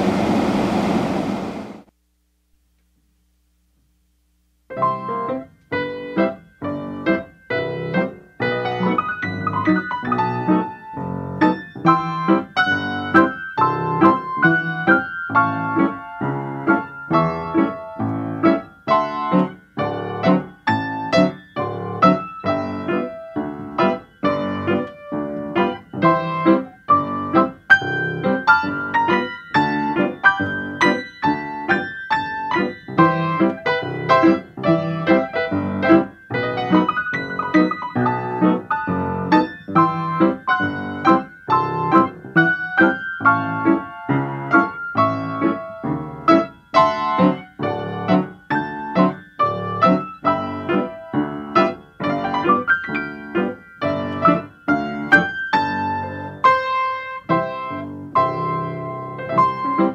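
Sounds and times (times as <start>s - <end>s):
solo piano music: 4.7s - 59.9s.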